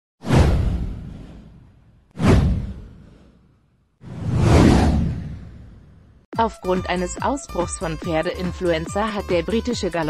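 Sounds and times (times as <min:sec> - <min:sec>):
low whoosh sweeping down: 0:04.0 - 0:06.2.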